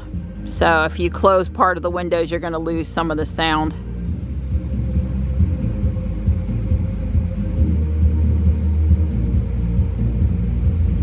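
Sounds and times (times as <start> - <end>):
muffled bass-heavy music: 0.0 - 11.0.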